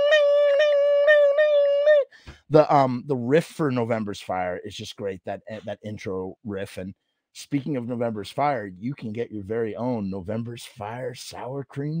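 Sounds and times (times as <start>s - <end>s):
man vocally imitating guitar: 0.0s - 3.7s, 5.0s - 6.5s, 7.7s - 12.0s.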